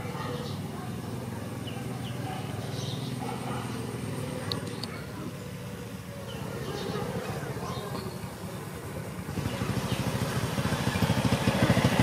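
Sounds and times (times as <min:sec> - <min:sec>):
small motorbike engine running: 0:00.0 - 0:12.0.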